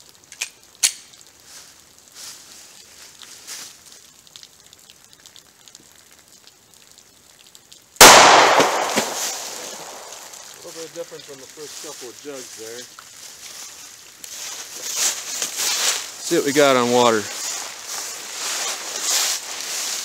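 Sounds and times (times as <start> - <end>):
pistol shot with echo: 8.0 - 10.4.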